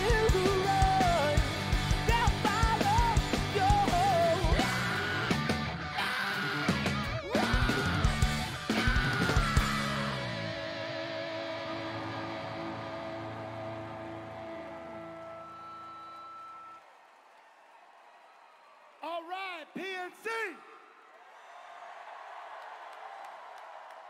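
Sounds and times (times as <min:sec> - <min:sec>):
electric guitar: 0:00.0 - 0:15.8
drums: 0:00.0 - 0:16.7.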